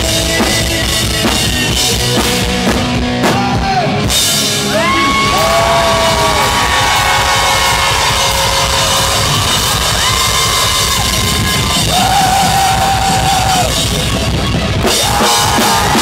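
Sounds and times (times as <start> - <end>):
punk rock band playing: 0.0 - 16.0.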